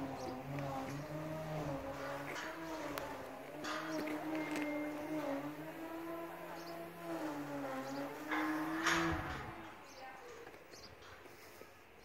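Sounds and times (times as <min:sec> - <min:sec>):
engine humming: 0:00.0 - 0:12.0.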